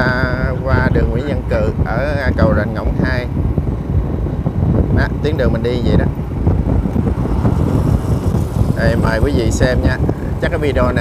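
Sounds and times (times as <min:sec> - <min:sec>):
road noise: 0:00.0 - 0:11.0
wind buffeting microphone: 0:00.0 - 0:11.0
motorbike engine: 0:06.2 - 0:11.0.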